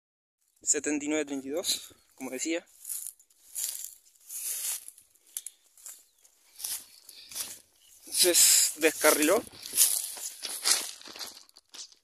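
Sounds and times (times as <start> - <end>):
footsteps crunching on ballast: 1.4 - 12.0
brushing through dry grass: 1.6 - 11.5.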